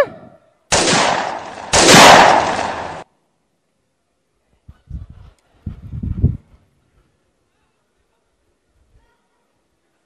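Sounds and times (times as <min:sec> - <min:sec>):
loud blast-like bursts: 0:00.7 - 0:03.1.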